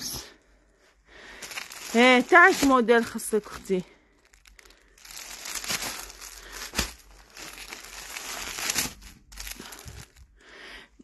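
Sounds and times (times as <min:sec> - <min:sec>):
plastic wrapping crinkling: 0:01.2 - 0:10.5.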